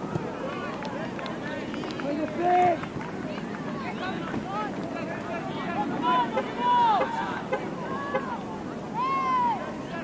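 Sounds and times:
people shouting and calling: 4.1 - 10.0
loud drawn-out call: 6.0 - 8.4.

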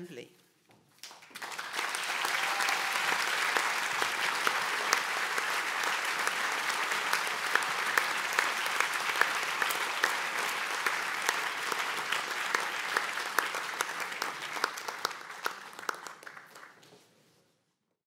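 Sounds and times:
audience applauding: 1.0 - 16.9.

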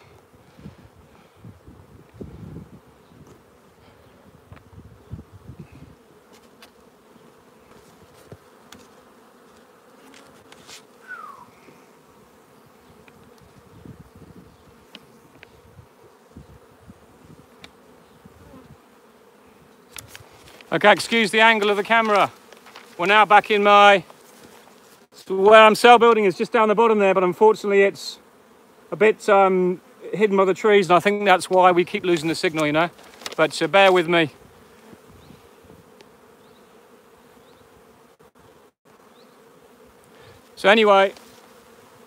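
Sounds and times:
honeybees buzzing: 0.0 - 42.0.

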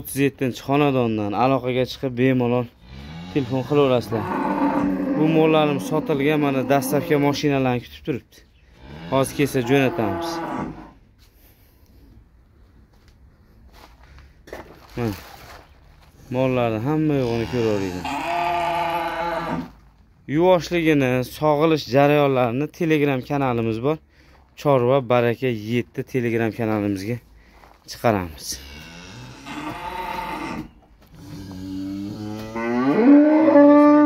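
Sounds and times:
cow mooing: 2.8 - 7.4, 8.9 - 11.0, 17.2 - 19.7, 28.6 - 34.0.

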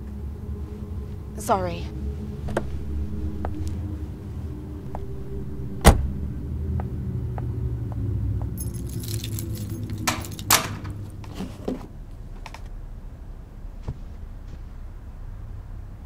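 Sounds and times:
car engine idling: 0.0 - 11.3
car door shutting: 5.8 - 6.2
keys jangling: 8.5 - 11.4.

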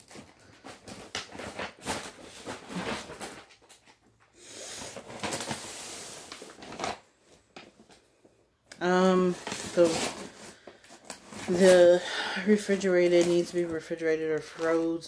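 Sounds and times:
plastic wrappers crinkling: 0.0 - 4.1, 4.7 - 8.0, 8.8 - 15.0.

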